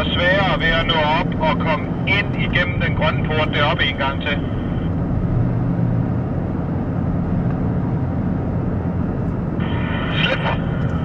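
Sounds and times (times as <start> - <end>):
car interior road and engine rumble: 0.0 - 11.0.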